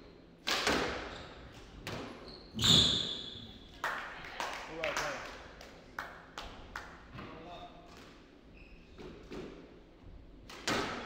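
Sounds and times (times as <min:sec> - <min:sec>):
squash ball knocks: 0:10.5 - 0:11.0.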